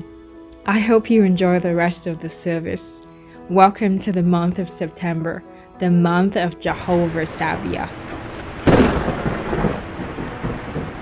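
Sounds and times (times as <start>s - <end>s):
rain-like hiss: 6.7s - 11.0s
thunder clap and rumble: 6.7s - 11.0s.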